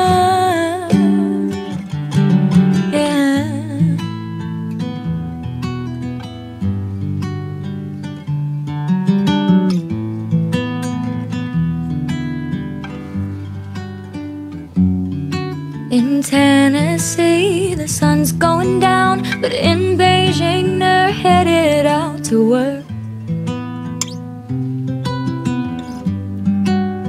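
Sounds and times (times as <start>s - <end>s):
picked acoustic guitar: 0.0s - 27.0s.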